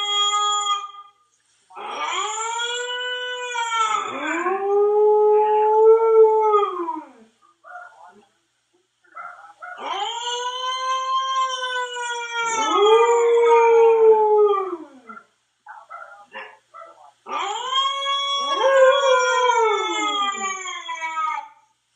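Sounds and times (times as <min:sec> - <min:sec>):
recorded howl from a phone: 0:00.0 - 0:01.2, 0:01.8 - 0:07.9, 0:09.6 - 0:16.2, 0:17.2 - 0:21.8
dog howling: 0:01.8 - 0:07.3, 0:09.2 - 0:16.2, 0:17.3 - 0:21.6.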